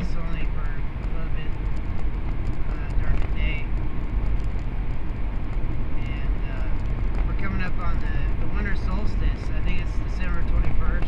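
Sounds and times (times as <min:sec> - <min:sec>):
road and engine rumble in cabin: 0:00.0 - 0:11.0.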